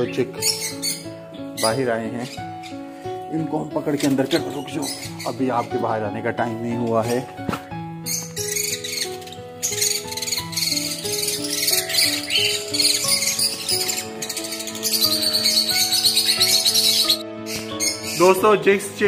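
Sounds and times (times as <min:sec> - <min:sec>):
background music: 0:00.0 - 0:19.0
cage birds chirping: 0:00.0 - 0:19.0.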